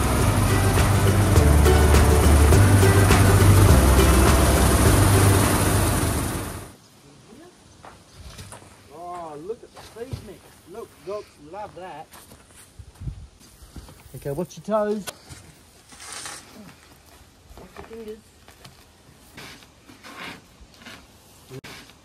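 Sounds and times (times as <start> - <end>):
background music beat: 0.0 - 6.6
grain auger machinery running: 0.0 - 6.7.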